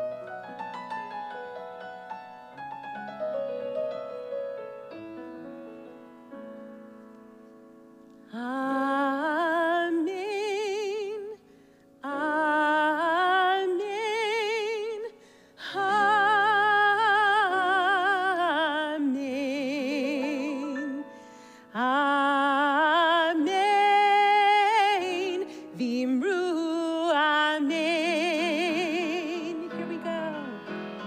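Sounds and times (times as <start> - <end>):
piano chords: 0.0 - 11.2, 15.7 - 31.0
woman singing with vibrato: 8.3 - 11.4, 12.0 - 31.0.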